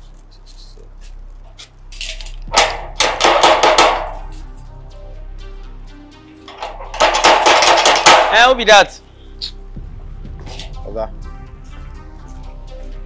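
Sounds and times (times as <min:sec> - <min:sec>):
hand rattling steel gate: 0:01.9 - 0:04.5, 0:06.4 - 0:08.6.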